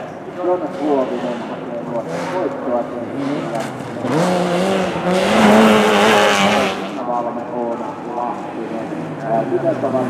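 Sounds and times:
rally car engine revving: 0.5s - 10.0s.

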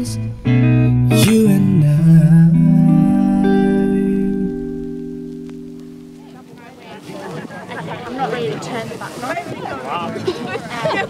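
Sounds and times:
person singing: 0.0s - 5.0s
acoustic guitar: 0.0s - 11.0s.

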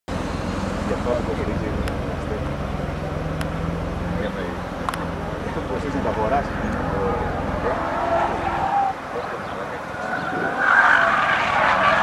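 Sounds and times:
distant car engine driving: 0.1s - 12.0s
indistinct voices: 0.8s - 11.0s.

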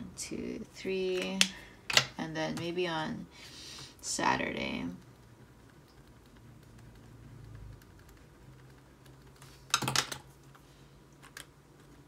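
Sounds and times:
pen scratching on paper: 4.4s - 9.6s
marker pen clicks and taps: 5.7s - 10.3s.

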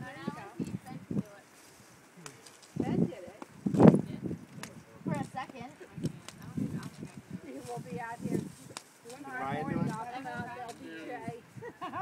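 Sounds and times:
people talking nearby: 0.0s - 1.6s, 2.2s - 12.0s.

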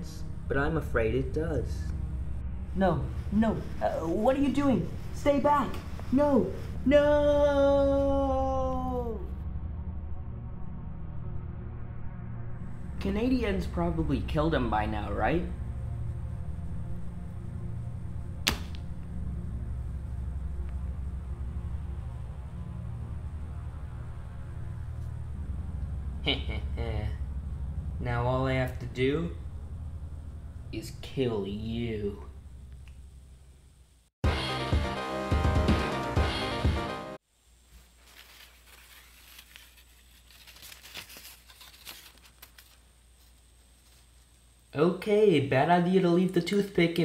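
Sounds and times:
low steady hum: 0.0s - 34.1s, 37.3s - 47.0s
paper rustling on carpet: 3.2s - 6.8s, 37.6s - 44.5s
sharp stab swish: 18.4s - 18.8s.

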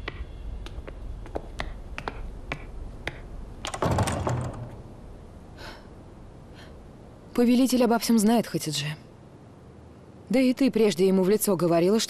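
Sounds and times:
woman breathing in: 5.6s - 6.8s
woman speaking: 7.3s - 9.1s, 10.3s - 12.0s.

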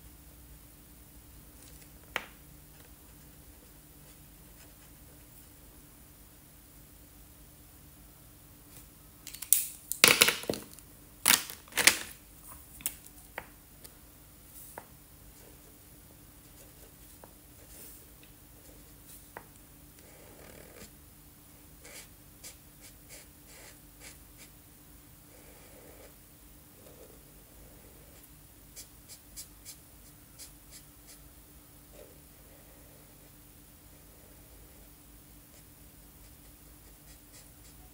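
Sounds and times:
marker scratching on paper: 36.2s - 37.9s.

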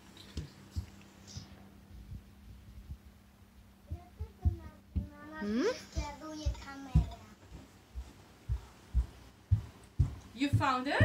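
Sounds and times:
steady low hum: 0.0s - 11.0s
bare feet padding on floor: 3.9s - 11.0s.

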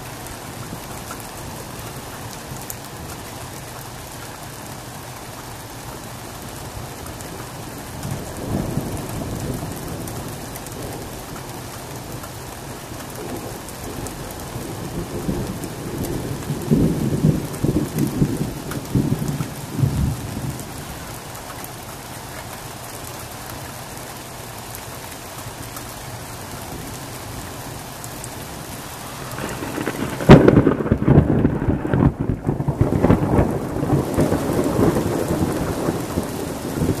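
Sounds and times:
rain hissing: 0.0s - 37.0s
thunder rolling: 13.2s - 20.7s, 28.9s - 37.0s
sharp thunderclap: 29.1s - 37.0s.

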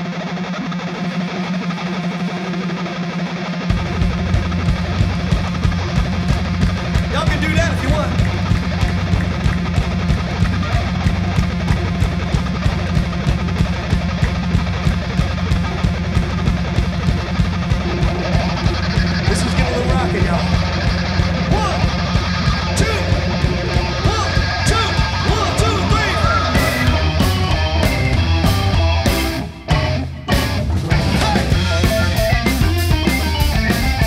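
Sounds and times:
electric guitar: 0.0s - 34.0s
keyboards: 0.0s - 34.0s
bass and drums beat: 3.6s - 34.0s
person's voice: 7.0s - 8.2s, 19.2s - 20.7s, 21.4s - 22.0s, 22.8s - 23.3s, 23.9s - 26.9s.

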